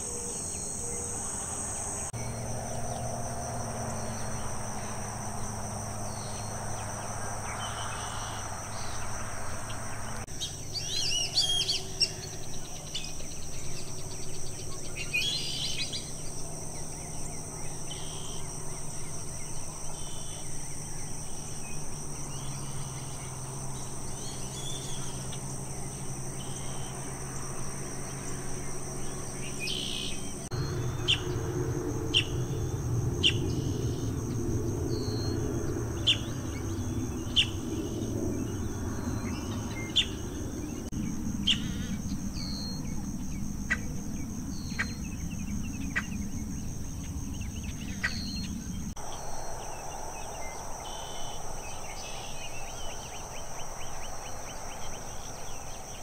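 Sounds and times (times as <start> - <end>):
high-pitched insect chorus: 0.0 - 56.0
low steady hum: 0.0 - 56.0
bird calls: 28.0 - 40.9, 41.5 - 56.0.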